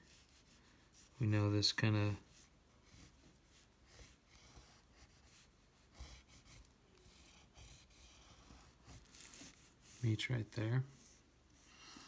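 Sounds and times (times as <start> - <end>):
pencil scratching on paper: 0.0 - 12.0.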